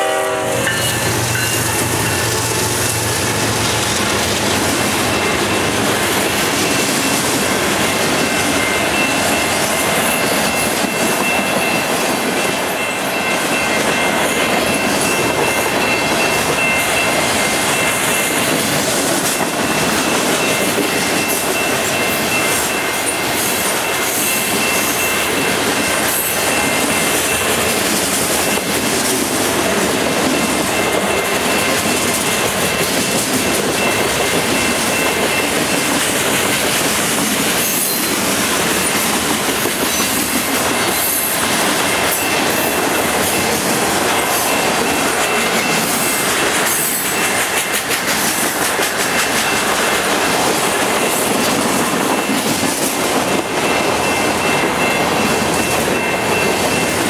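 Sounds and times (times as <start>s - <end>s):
train wheels clattering on rails: 0.0s - 57.0s.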